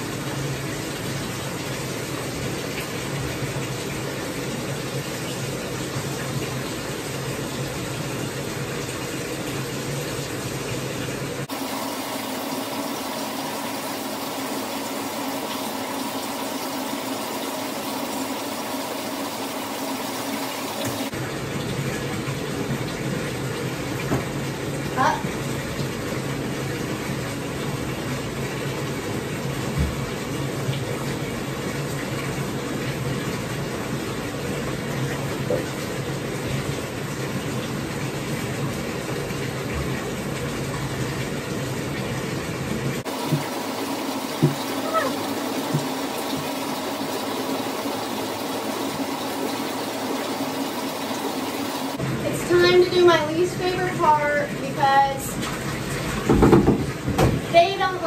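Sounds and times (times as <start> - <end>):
tap water running into bathtub: 0.0 - 58.0
small knocks and splashes: 43.0 - 47.1, 55.4 - 57.5.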